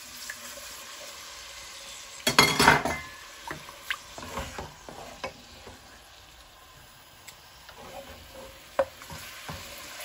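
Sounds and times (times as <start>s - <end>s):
food sizzling in oil: 0.0s - 10.0s
wooden spoon scraping pot: 3.5s - 5.8s, 7.7s - 10.0s.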